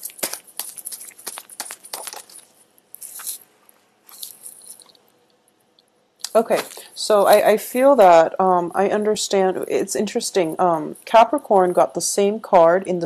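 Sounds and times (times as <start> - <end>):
cards being shuffled: 0.0 - 3.4.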